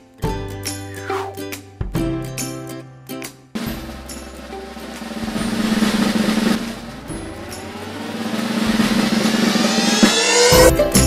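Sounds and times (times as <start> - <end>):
rising tone: 0.7 - 1.5, 5.6 - 10.7
snare drum roll: 3.6 - 11.0.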